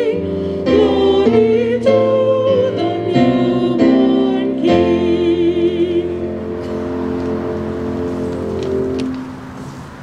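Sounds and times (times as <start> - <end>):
woman singing with vibrato: 0.0 - 6.6
electronic keyboard chord: 0.0 - 9.8.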